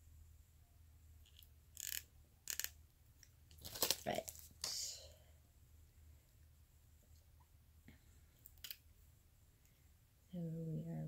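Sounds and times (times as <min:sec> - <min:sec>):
plastic syringe clicks and rustles: 0:01.2 - 0:04.8, 0:08.4 - 0:08.8.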